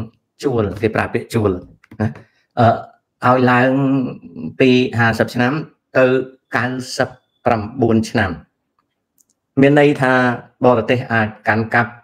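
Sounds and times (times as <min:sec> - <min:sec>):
man talking: 0:00.0 - 0:08.5, 0:09.6 - 0:12.0.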